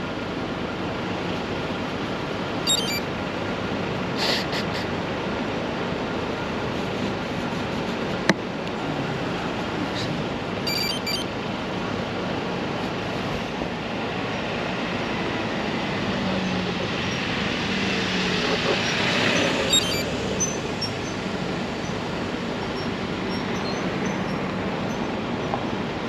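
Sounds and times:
road traffic hum: 0:00.0 - 0:26.0.

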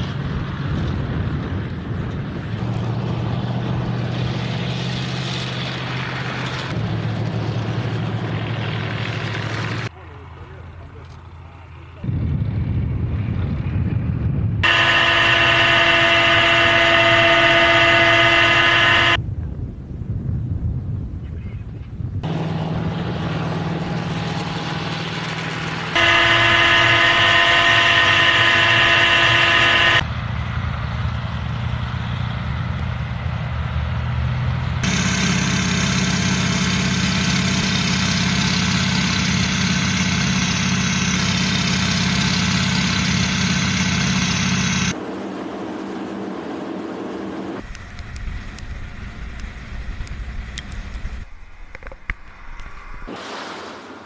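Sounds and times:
broad even engine noise: 0:00.0 - 0:19.2, 0:22.2 - 0:54.0
rough engine noise: 0:00.0 - 0:19.2, 0:22.2 - 0:53.2
multi-pitched engine whine: 0:00.0 - 0:19.3, 0:22.1 - 0:53.1.

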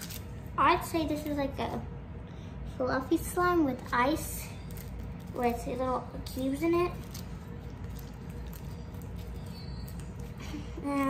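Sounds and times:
steady low hum: 0:00.0 - 0:11.0
slime squishing: 0:04.6 - 0:11.0.

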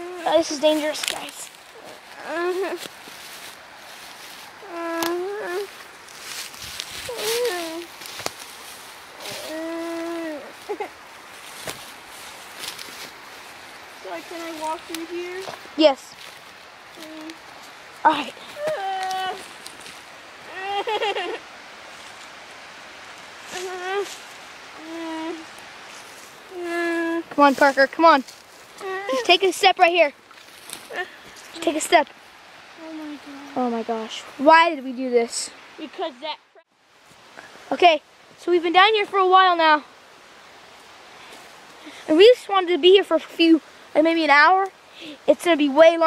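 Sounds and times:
young person's wordless vocal: 0:00.0 - 0:02.9, 0:04.6 - 0:07.9, 0:09.2 - 0:11.0, 0:17.0 - 0:19.6, 0:20.5 - 0:21.4, 0:23.5 - 0:25.6, 0:26.5 - 0:30.2, 0:30.8 - 0:32.1, 0:32.7 - 0:36.6, 0:41.8 - 0:46.0
footsteps through undergrowth: 0:00.0 - 0:34.5, 0:36.8 - 0:37.4, 0:40.3 - 0:42.2
plants rustling: 0:00.0 - 0:36.2
faint hiss: 0:00.0 - 0:46.0.

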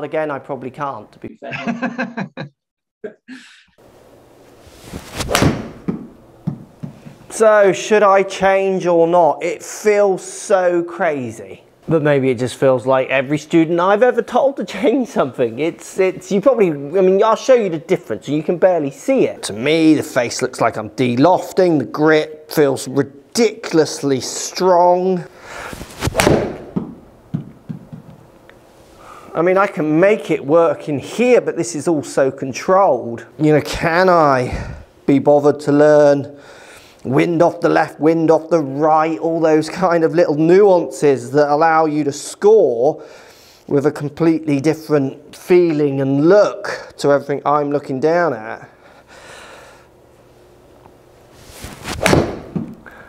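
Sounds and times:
golf club swishing: 0:04.4 - 0:06.2, 0:25.7 - 0:26.8, 0:51.3 - 0:52.7
golf club striking ball: 0:05.2 - 0:07.0, 0:26.1 - 0:27.0, 0:52.0 - 0:52.8.

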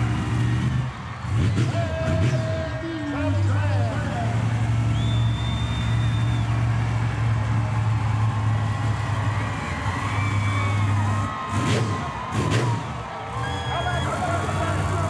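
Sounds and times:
truck engine rumbling: 0:00.0 - 0:15.0.

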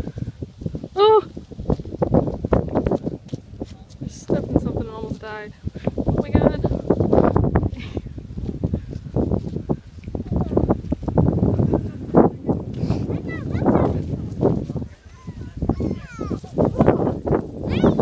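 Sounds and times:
microphone handling and wind rumble: 0:00.0 - 0:18.0.

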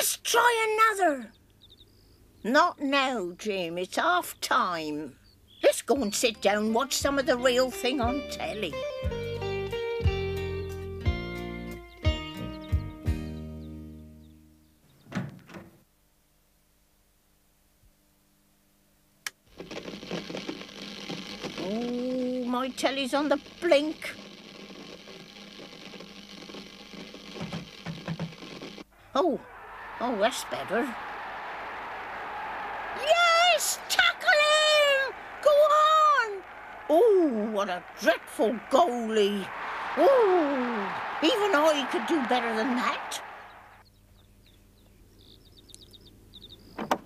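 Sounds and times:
birds chirping: 0:00.3 - 0:09.0, 0:10.4 - 0:15.2, 0:29.0 - 0:47.0
television interference hiss: 0:19.6 - 0:28.9, 0:30.0 - 0:43.8.

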